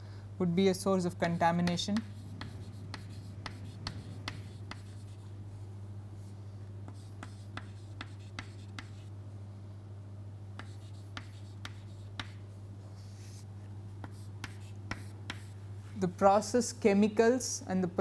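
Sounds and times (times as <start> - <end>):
steady low hum: 0.0 - 18.0
chalk writing on a chalkboard: 1.2 - 5.4, 6.8 - 9.1, 10.6 - 15.6.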